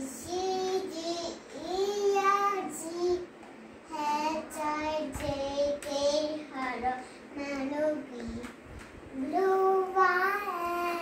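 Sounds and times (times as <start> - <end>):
girl singing a sing-song chant: 3.9 - 11.0.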